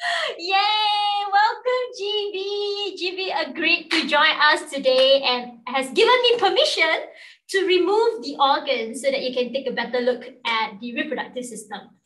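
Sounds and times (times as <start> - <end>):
woman's sing-song vocalisation: 0.0 - 3.4.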